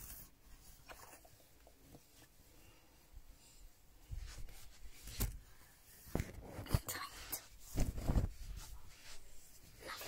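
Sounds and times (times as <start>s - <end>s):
fabric rustling on microphone: 0.0s - 10.0s.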